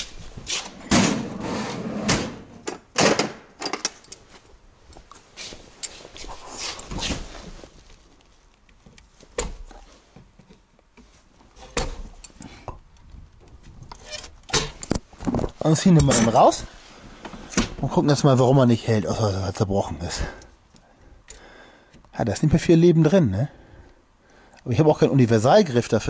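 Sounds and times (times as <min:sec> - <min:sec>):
metal tools clattering: 0:16.0 - 0:16.5.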